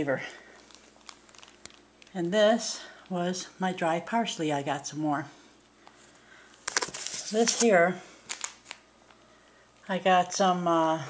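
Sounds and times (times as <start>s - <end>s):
woman speaking: 0.0s - 0.4s, 2.1s - 5.4s, 7.2s - 8.1s, 9.8s - 11.0s.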